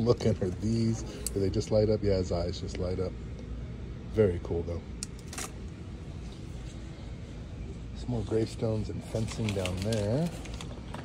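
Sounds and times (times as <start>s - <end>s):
store interior hum: 0.0s - 11.0s.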